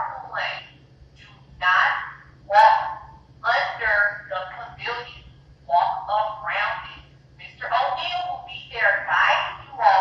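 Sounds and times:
person speaking: 1.3 - 10.0.

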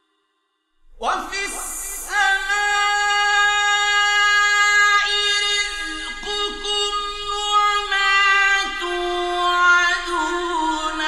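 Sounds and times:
man reciting in long sung note: 1.0 - 11.0.

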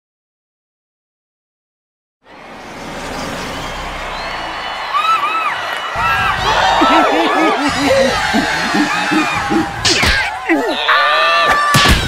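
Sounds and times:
cartoon voices cheering and whooping: 3.6 - 12.0.

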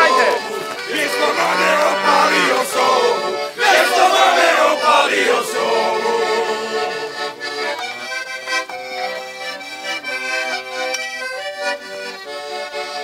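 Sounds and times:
accordion playing: 0.0 - 13.0.

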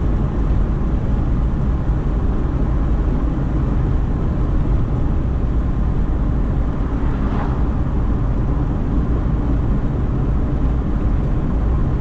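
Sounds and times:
car road noise: 0.0 - 12.0.

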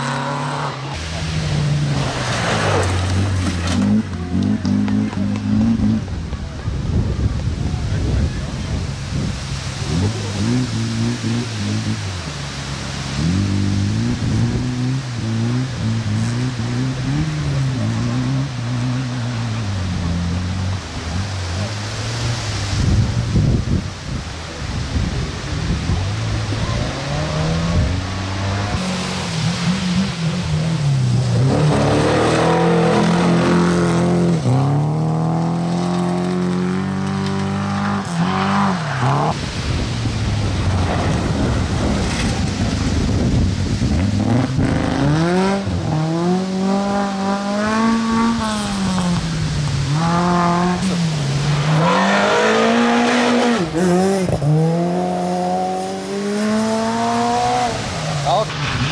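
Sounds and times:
rally car engine revving: 0.0 - 58.9.

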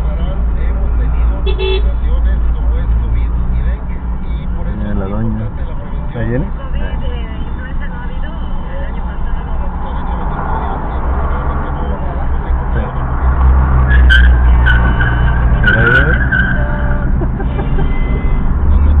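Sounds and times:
car engine and road rumble: 0.0 - 19.0
high-pitched squeals: 13.7 - 17.0.

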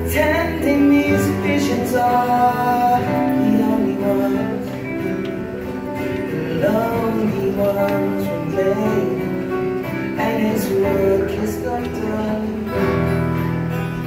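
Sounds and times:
acoustic guitars playing: 0.0 - 14.0
person singing: 0.0 - 14.0.

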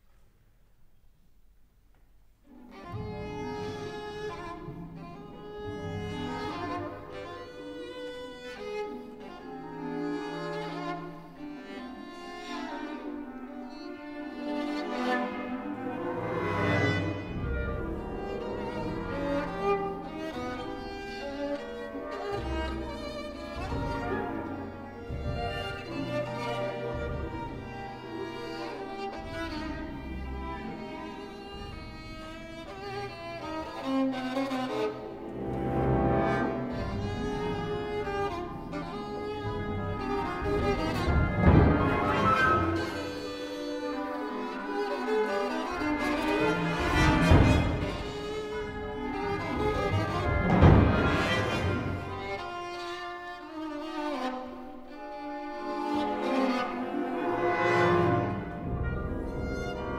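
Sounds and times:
solo violin long notes: 2.5 - 59.9
low strings sustaining deep notes: 15.3 - 33.8, 34.7 - 52.4, 56.1 - 59.9.

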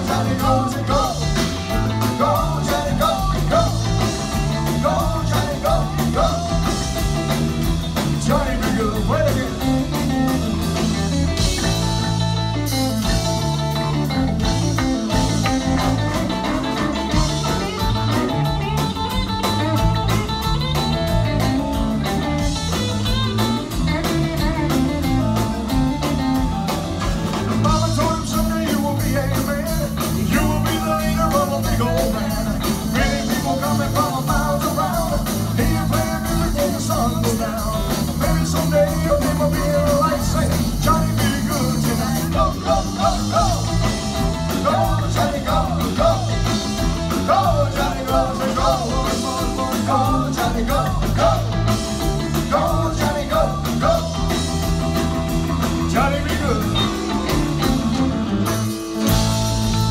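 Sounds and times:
live rock and roll band: 0.0 - 59.9.

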